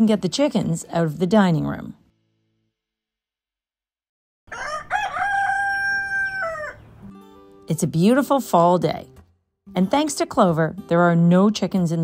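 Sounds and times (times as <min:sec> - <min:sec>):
rooster crowing: 0:04.5 - 0:07.0.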